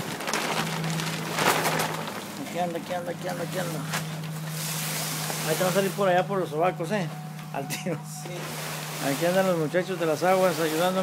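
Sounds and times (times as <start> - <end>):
crackling rustling handling noise: 0.0 - 11.0
steady low hum: 0.0 - 11.0.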